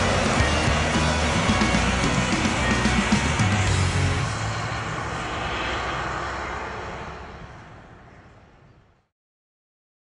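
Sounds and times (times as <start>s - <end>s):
lorry engine and tyre noise: 0.0s - 9.1s.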